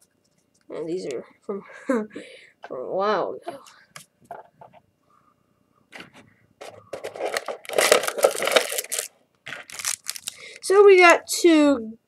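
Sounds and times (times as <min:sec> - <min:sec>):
foil wrappers crinkling: 0:07.0 - 0:10.6.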